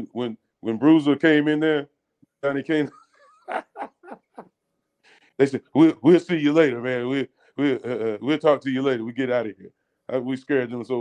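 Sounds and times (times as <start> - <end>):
man laughing: 2.8 - 4.6.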